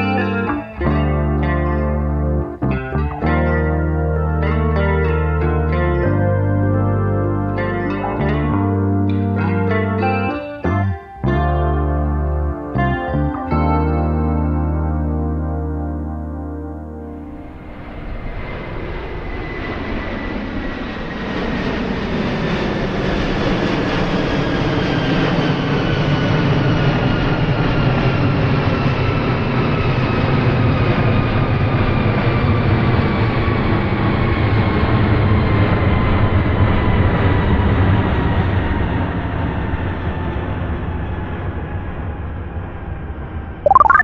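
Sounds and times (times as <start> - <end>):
jet airliner passing overhead: 17.5 - 30.2.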